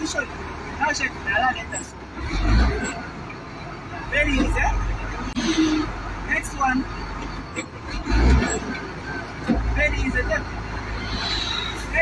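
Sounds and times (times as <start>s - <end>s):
truck cab rumble: 0.0s - 12.0s.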